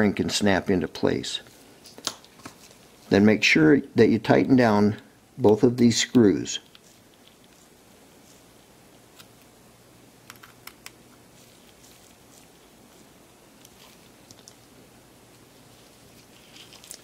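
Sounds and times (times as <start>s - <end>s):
low steady room hum: 0.0s - 17.0s.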